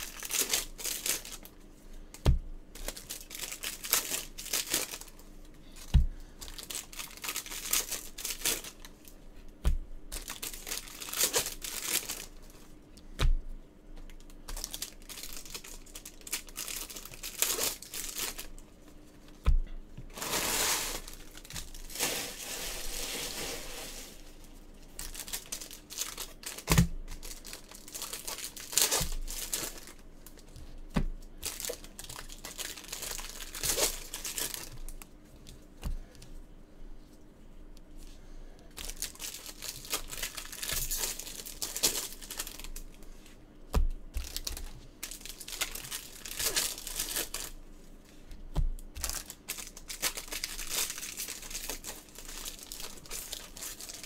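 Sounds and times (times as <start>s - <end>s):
foil wrappers crinkling and tearing: 0.0s - 1.6s, 2.8s - 9.2s, 10.1s - 12.7s, 14.1s - 18.6s, 20.1s - 30.5s, 31.4s - 35.6s, 38.7s - 43.0s, 44.2s - 47.6s, 48.9s - 54.0s.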